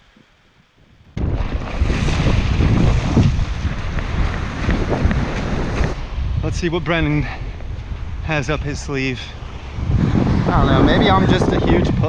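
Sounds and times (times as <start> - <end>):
wind on microphone: 0.8 - 12.0
breaking surf: 1.2 - 12.0.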